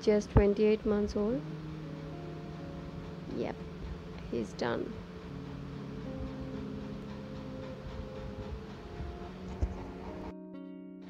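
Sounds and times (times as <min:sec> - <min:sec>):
plucked guitar-like instrument: 0:00.0 - 0:11.0
soft background music: 0:00.0 - 0:11.0.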